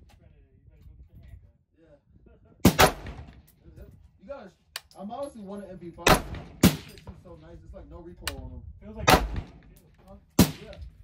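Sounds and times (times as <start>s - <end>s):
gunshots with ringing echo: 2.6s - 3.4s, 6.0s - 7.1s, 9.0s - 9.7s, 10.4s - 10.8s.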